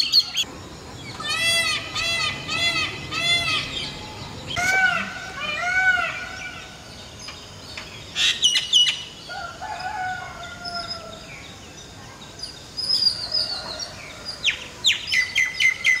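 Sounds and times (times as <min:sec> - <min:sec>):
birds calling: 0:00.0 - 0:11.5.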